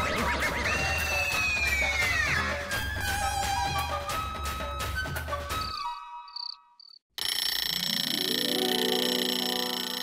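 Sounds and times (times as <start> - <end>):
music: 0.0 - 6.4, 7.9 - 10.0.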